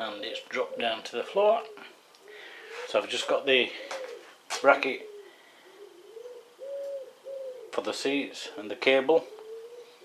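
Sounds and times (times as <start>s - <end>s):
dove cooing: 0.0s - 10.0s.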